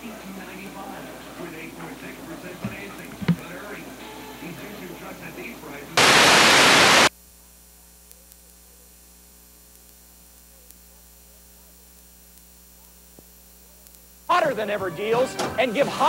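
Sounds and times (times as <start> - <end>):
low mains hum: 0.0 - 16.0
tape static hiss: 0.0 - 16.0.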